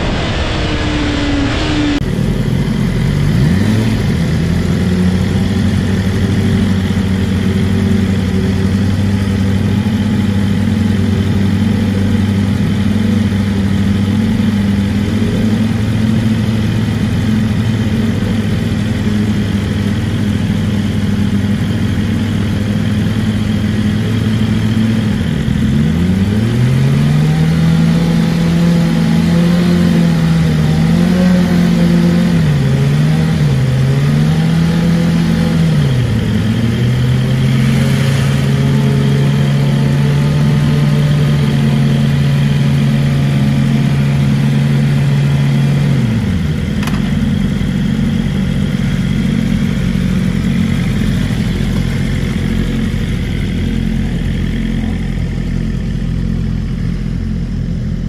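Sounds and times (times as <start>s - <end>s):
motorcycle engine revving: 0.0s - 58.0s
sharp click: 46.8s - 47.1s.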